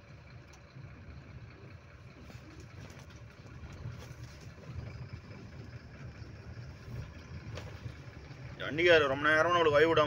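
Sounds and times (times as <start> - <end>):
engine and road rumble in cab: 0.0 - 10.0.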